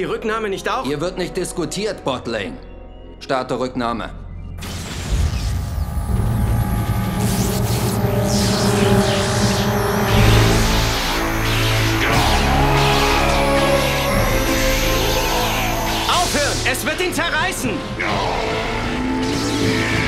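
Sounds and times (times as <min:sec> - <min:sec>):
dramatic music: 0:04.5 - 0:20.0
electrical crackling: 0:04.6 - 0:17.1
energy surge sound effect: 0:04.6 - 0:17.2, 0:18.7 - 0:20.0
deep low tones: 0:05.4 - 0:19.4.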